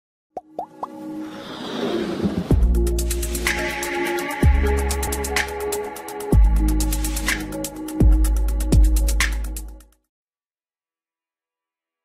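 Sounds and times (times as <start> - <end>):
whoosh: 1.2 - 2.8
intro music: 2.2 - 9.8.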